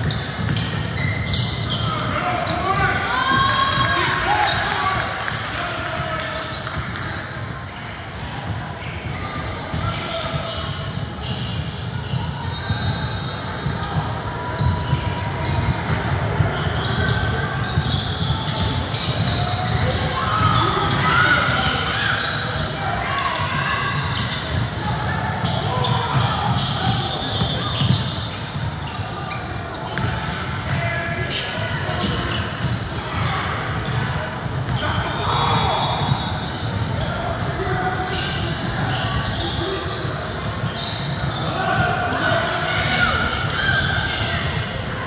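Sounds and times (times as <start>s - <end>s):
basketball bouncing on gym court: 0.0s - 45.0s.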